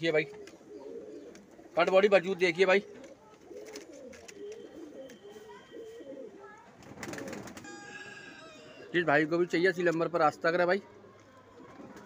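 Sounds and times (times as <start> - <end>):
pigeons cooing: 0.0 - 9.1.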